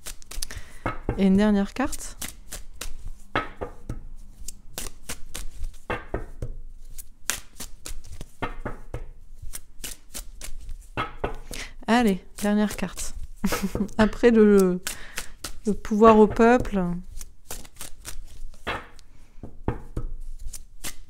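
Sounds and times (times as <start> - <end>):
cards being shuffled: 0.0 - 0.9, 1.5 - 21.0.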